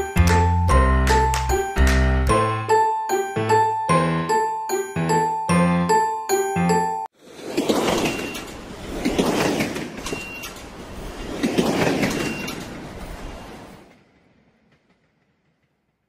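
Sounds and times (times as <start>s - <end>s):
train rumbling on track: 7.3s - 16.0s
high train squeals: 7.8s - 8.8s, 10.0s - 11.3s, 12.0s - 13.9s.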